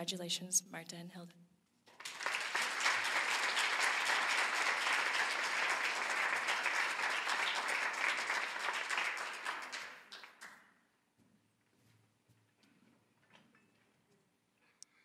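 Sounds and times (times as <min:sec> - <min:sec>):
audience applauding: 0:01.9 - 0:10.6.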